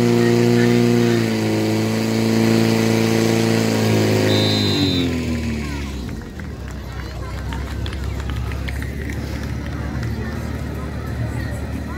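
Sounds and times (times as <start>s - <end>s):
pump engine idling: 3.8s - 11.9s
people's voices: 4.3s - 11.9s.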